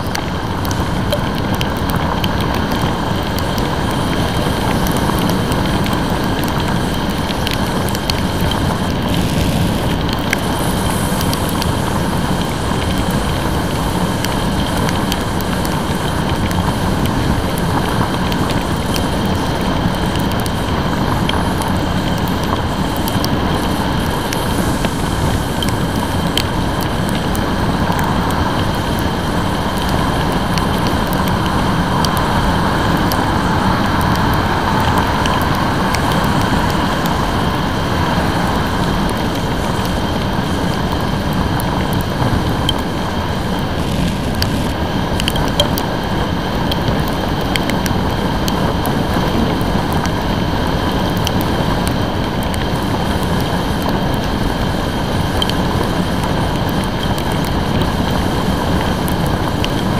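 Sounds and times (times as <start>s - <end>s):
motorcycle riding in rain: 0.0s - 59.9s
raindrops ticking on camera: 0.0s - 59.9s.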